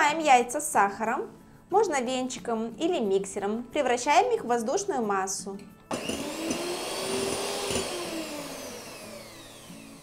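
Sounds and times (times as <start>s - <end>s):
electric hand mixer whining: 5.9s - 10.0s.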